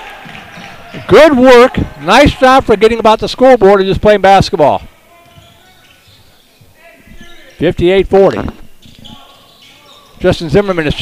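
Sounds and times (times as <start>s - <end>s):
basketball court noise: 0.0s - 11.0s
distant crowd voices: 4.8s - 11.0s.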